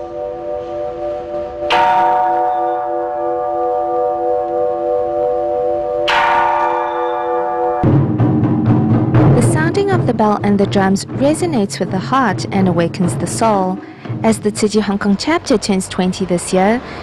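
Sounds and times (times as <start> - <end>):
large temple bell ringing: 0.0 - 13.2.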